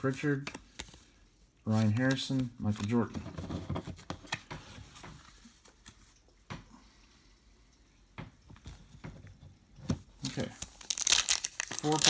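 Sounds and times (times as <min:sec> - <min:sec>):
cards tapping and sliding: 0:00.3 - 0:01.1, 0:01.7 - 0:06.0.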